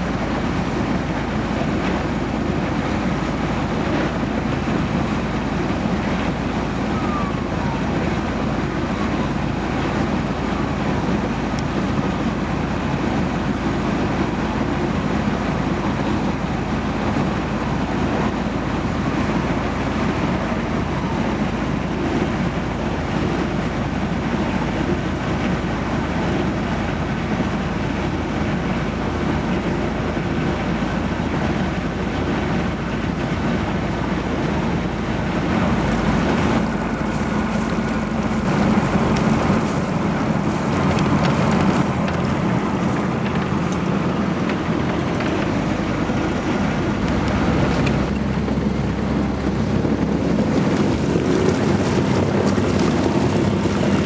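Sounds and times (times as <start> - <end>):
diesel engine droning: 0.0 - 54.0
water noise: 0.0 - 54.0
wind on microphone: 0.0 - 54.0.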